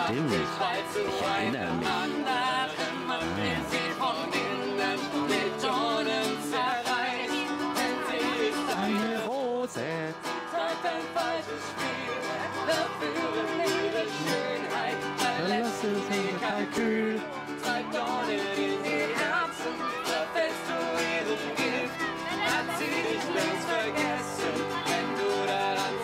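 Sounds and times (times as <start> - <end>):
man singing: 0.0 - 26.0
plucked lute: 0.0 - 26.0
woman singing: 0.4 - 9.4, 10.3 - 26.0.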